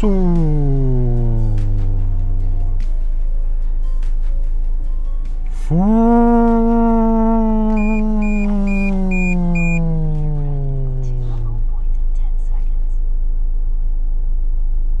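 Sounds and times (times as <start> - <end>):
voice holding long sliding note: 0.0 - 2.4, 5.5 - 11.6
steady low hum: 0.0 - 4.0, 5.5 - 15.0
short high beeps: 7.8 - 9.8.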